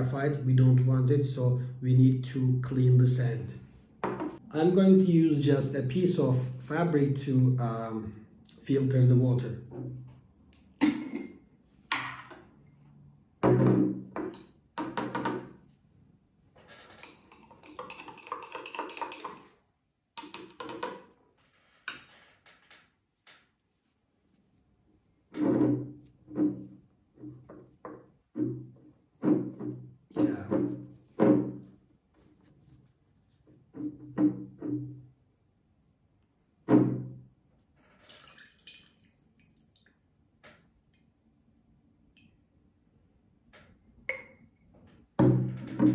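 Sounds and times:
glass jar and lid clinking: 20.2s - 21.1s
water pouring: 38.0s - 39.9s.

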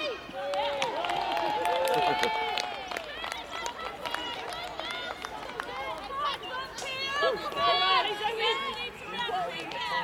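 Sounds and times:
women shouting and cheering: 2.7s - 10.0s.

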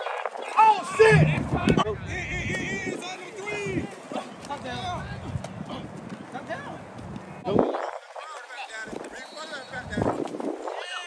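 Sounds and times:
players calling out: 0.4s - 6.8s.

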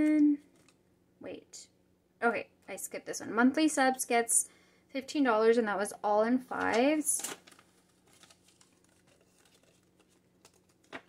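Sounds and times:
paper banknotes rustling: 6.5s - 11.0s.

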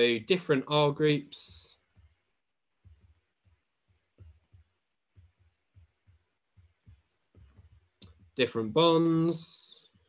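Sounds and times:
stylus tapping on tablet: 1.3s - 8.5s.

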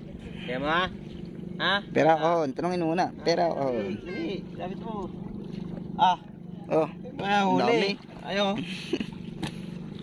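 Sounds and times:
boat engine running at low revs: 0.0s - 10.0s.

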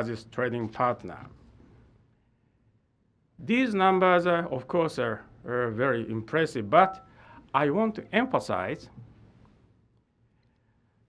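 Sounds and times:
man's spoken word echoing: 0.0s - 1.4s, 3.4s - 9.0s.

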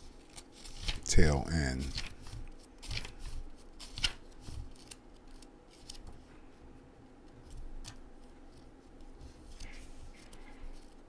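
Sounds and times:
paper pages rustling: 0.0s - 6.3s, 7.4s - 11.0s
page flicks: 0.3s - 1.0s, 1.8s - 6.2s.

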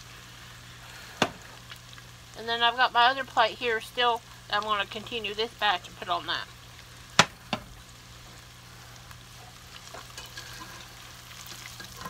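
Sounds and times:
deep-frying sizzle: 0.0s - 12.0s.

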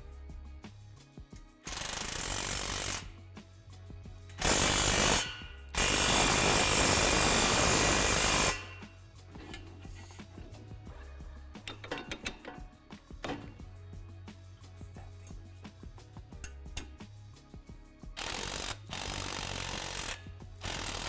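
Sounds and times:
background music with beat: 0.0s - 21.0s.

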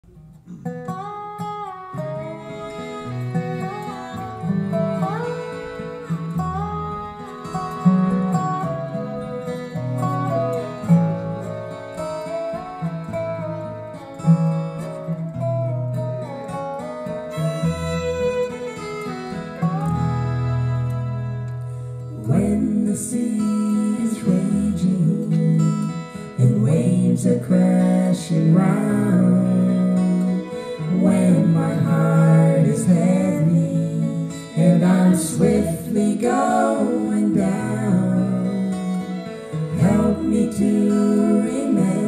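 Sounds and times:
bluegrass band playing: 0.2s - 42.0s.

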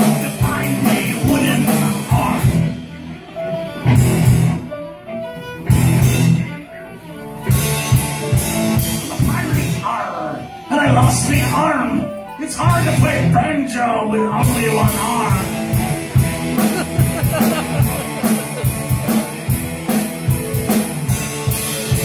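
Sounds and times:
drum kit: 0.0s - 3.0s, 3.8s - 4.7s, 5.6s - 6.5s, 7.4s - 9.9s, 12.6s - 13.3s, 14.4s - 22.0s
violins: 0.0s - 13.2s, 14.6s - 22.0s
electric guitar: 0.0s - 13.4s, 14.4s - 22.0s
banjo: 14.4s - 22.0s.

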